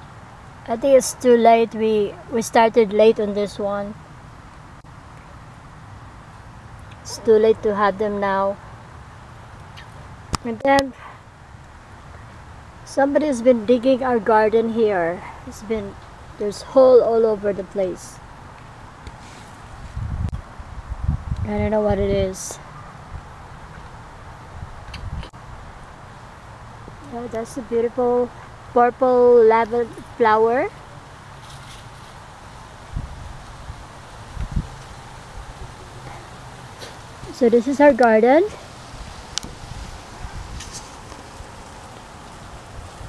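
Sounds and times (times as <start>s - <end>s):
wind on microphone: 19.6s - 23.4s, 24.5s - 25.4s, 32.8s - 41.9s.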